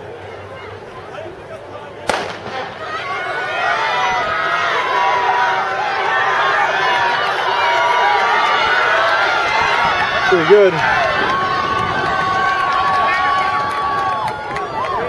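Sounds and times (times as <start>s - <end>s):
spectators cheering and shouting: 0.0s - 15.0s
starter's pistol shot: 2.1s - 3.0s.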